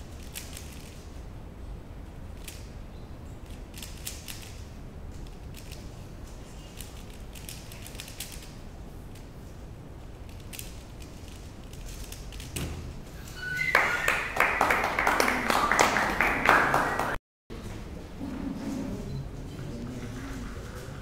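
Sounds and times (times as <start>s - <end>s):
puzzle cube clicking: 3.4s - 4.6s, 5.2s - 5.8s, 6.8s - 8.5s, 10.3s - 12.5s
applause and cheering: 13.7s - 17.2s.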